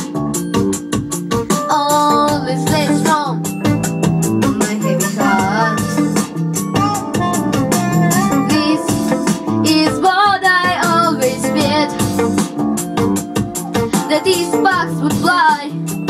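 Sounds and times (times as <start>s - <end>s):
pop backing track with guitar: 0.0s - 16.0s
child singing: 1.7s - 3.4s, 4.6s - 6.1s, 8.5s - 9.0s, 9.6s - 12.1s, 14.1s - 15.8s.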